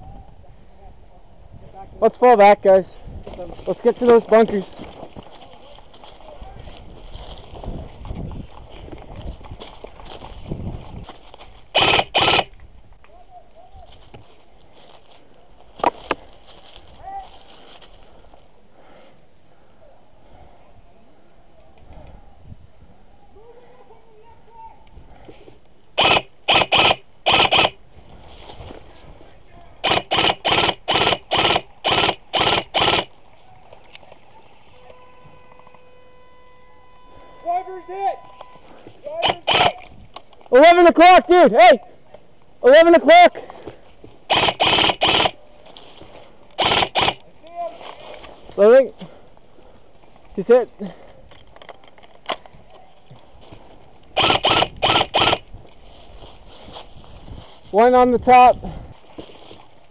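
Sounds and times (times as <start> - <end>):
airsoft rifle shots: 11.8 - 12.5, 26.0 - 27.8, 29.8 - 33.1, 39.2 - 39.8, 44.3 - 45.4, 46.6 - 47.2, 54.2 - 55.4.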